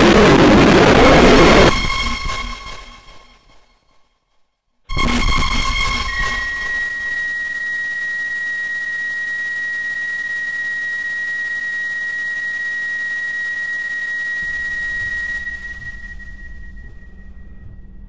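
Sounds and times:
loud burst of noise: 0.0 - 3.1, 4.9 - 18.0
steady high-pitched tone: 0.0 - 3.3, 4.9 - 18.0.

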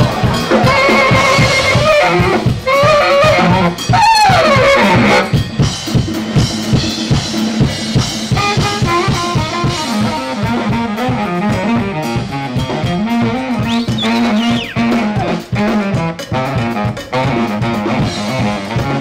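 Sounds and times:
saxophone and trumpets: 0.0 - 5.4, 8.3 - 19.0
brass band playing upbeat music: 0.0 - 19.0
steady drum beat: 0.0 - 19.0.

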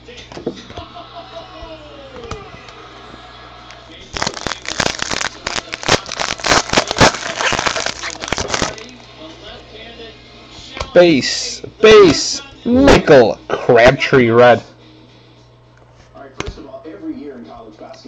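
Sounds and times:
card pack wrapper crinkling and tearing: 4.1 - 9.1.

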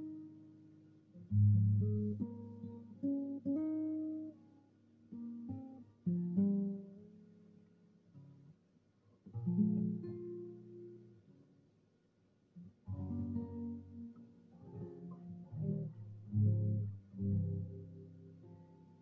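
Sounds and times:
fingerstyle nylon-string guitar: 0.0 - 11.8, 12.5 - 19.0.

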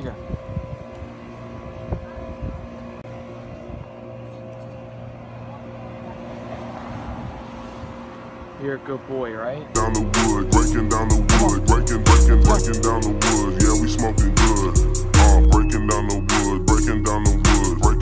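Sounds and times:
motor running steadily: 0.0 - 18.0.

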